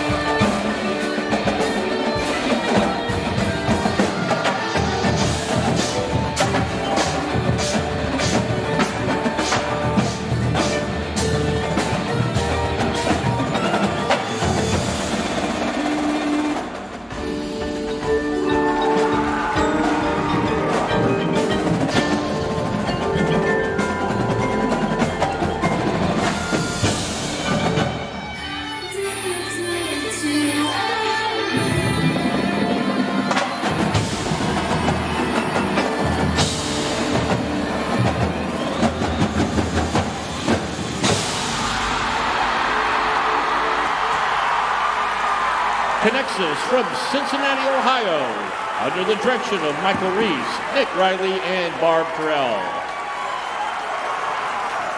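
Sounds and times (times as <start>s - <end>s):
drum and cymbal roll: 0.0s - 28.2s, 31.9s - 44.8s
percussion ensemble playing: 0.0s - 29.8s, 31.3s - 54.9s
crowd cheering: 11.7s - 17.4s, 18.3s - 30.0s, 32.4s - 54.9s.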